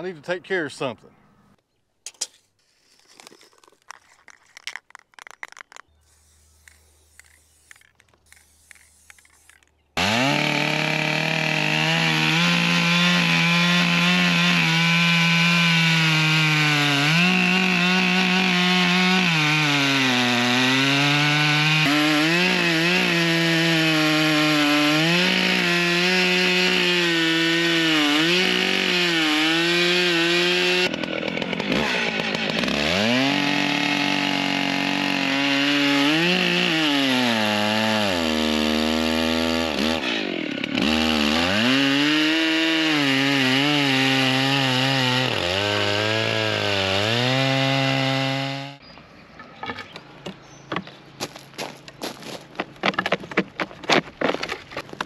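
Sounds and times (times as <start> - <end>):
chainsaw cutting log: 3.0 - 48.8, 49.6 - 55.0.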